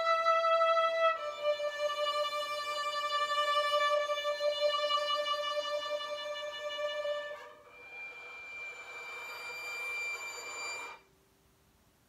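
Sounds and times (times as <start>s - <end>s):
solo violin bowing: 0.0s - 11.1s.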